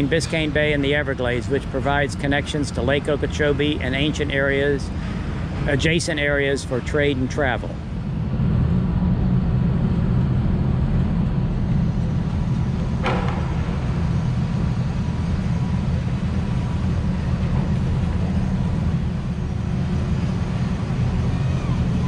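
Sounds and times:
boat engines rumbling: 0:00.0 - 0:22.0.

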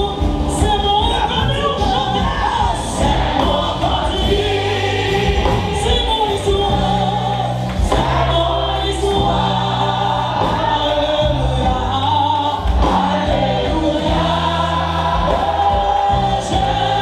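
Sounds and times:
held bass notes: 0:00.0 - 0:17.0
many voices singing along: 0:00.0 - 0:17.0.

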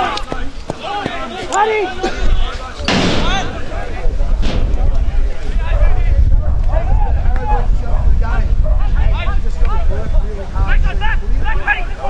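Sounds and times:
people shouting: 0:00.0 - 0:09.4
wind rumble on microphone: 0:02.2 - 0:12.0
sharp thump: 0:02.9 - 0:05.4.

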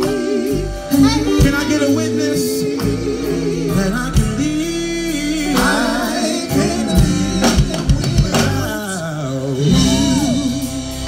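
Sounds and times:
amplified keys: 0:00.0 - 0:11.0
bass: 0:00.0 - 0:11.0
drums: 0:00.0 - 0:11.0
gospel group singing: 0:00.0 - 0:11.0.

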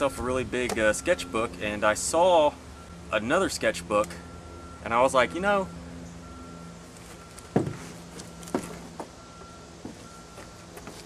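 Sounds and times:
distant reversing alarm beeps: 0:00.0 - 0:11.0
thumps on wooden deck boards: 0:07.5 - 0:09.1.

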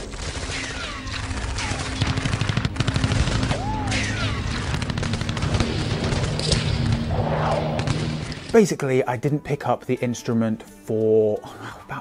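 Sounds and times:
machine-gun fire: 0:00.0 - 0:08.5.

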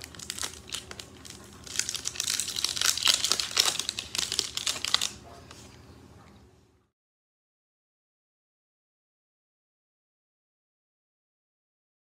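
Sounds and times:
foil wrapper crinkling and tearing: 0:00.0 - 0:05.2.

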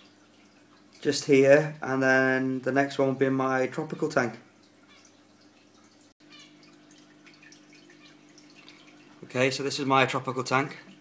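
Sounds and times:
aquarium equipment hum: 0:00.0 - 0:11.0
dripping and trickling water: 0:00.0 - 0:11.0.

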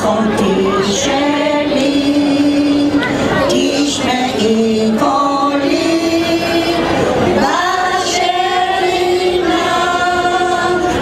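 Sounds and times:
women singing in unison: 0:00.0 - 0:11.0.

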